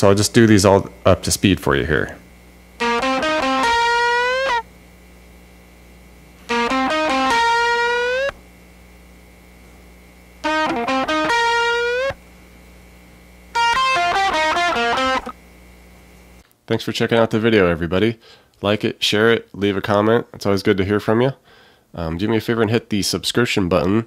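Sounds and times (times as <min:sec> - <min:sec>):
steady low hum: 0:00.0 - 0:23.8
electric guitar lead lick: 0:02.8 - 0:04.7, 0:06.5 - 0:08.4, 0:10.4 - 0:12.2, 0:13.5 - 0:15.4.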